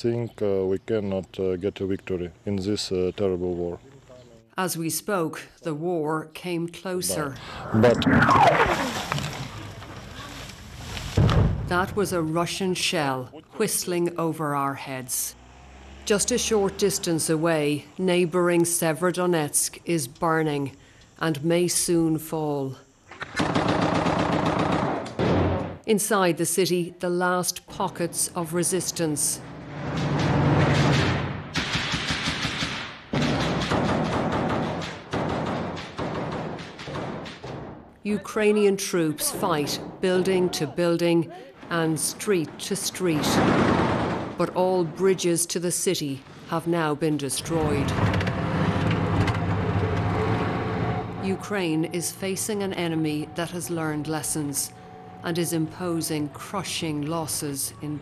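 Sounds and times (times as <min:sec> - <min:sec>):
road noise: 0:14.8 - 0:19.9, 0:28.5 - 0:31.5, 0:46.0 - 0:58.0
machine-gun fire: 0:23.4 - 0:25.0, 0:30.2 - 0:37.7.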